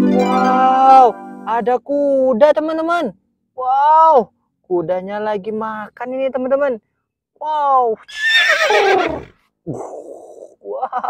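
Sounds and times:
horse whinnying: 8.0s - 10.6s
breathy sound: 9.7s - 10.6s.

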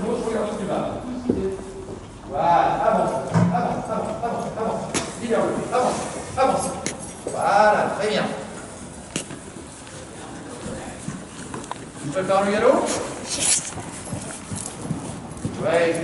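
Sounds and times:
horse hoofbeats on sand: 13.7s - 16.0s.

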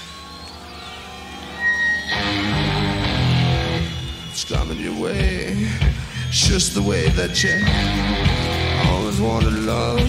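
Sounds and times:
rock band instrumental: 0.0s - 10.0s.

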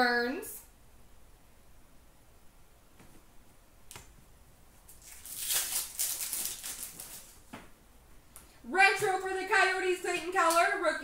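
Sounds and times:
wrapper crinkling and rustling: 4.9s - 7.4s.

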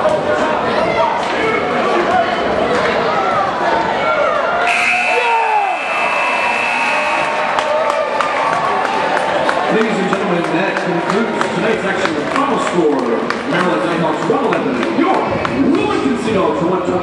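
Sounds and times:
crowd voices in a gymnasium: 0.0s - 17.0s
scoreboard buzzer: 4.6s - 7.6s.

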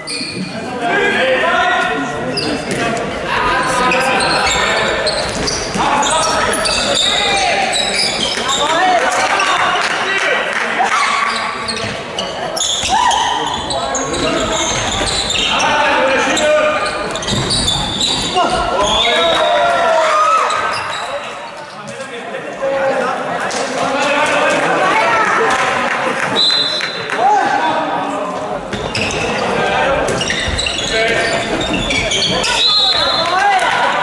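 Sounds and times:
ball bouncing on hall floor: 17.0s - 19.4s, 28.7s - 33.4s.

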